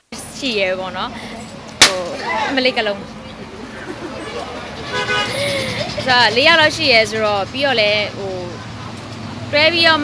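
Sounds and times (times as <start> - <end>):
vehicle horn: 4.2 - 5.4.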